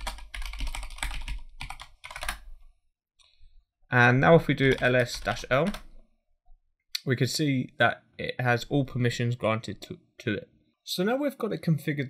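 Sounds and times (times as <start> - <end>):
computer keyboard typing: 0.0 - 2.5, 4.4 - 6.0.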